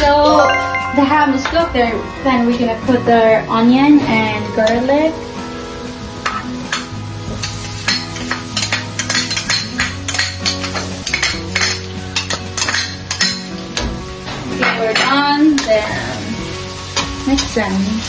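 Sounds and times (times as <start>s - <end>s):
background music: 0.0s - 18.0s
spatula stirring pan with sizzle: 4.6s - 18.0s
spoon clinking and scraping: 7.8s - 13.5s.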